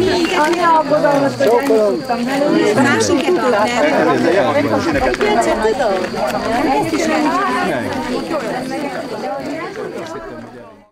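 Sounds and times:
people talking at once: 0.0s - 10.9s.

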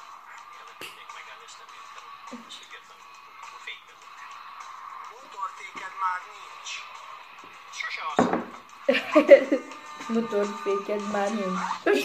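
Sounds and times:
television background music: 0.0s - 12.0s.

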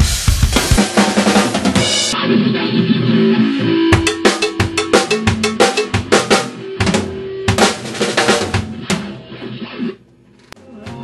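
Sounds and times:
drum kit played with sticks: 0.0s - 9.4s.

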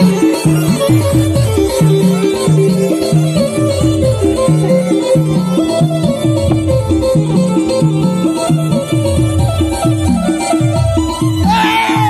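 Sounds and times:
electronic keyboard melody: 0.0s - 11.5s.

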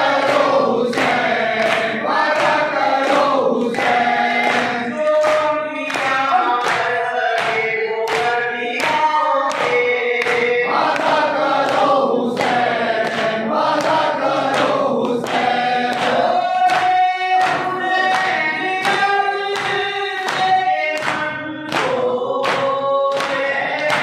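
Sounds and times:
men chanting a lament: 0.0s - 24.0s
rhythmic chest-beating hand slaps: 0.0s - 24.0s.

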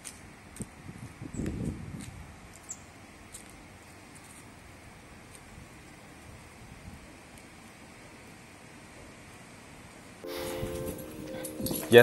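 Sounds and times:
footsteps on concrete: 0.0s - 4.6s
faint outdoor hiss: 0.0s - 12.0s.

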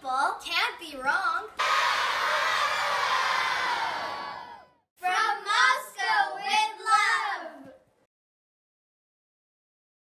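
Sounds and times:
children shouting excitedly: 1.6s - 4.8s
crowd of children cheering: 1.6s - 4.8s.

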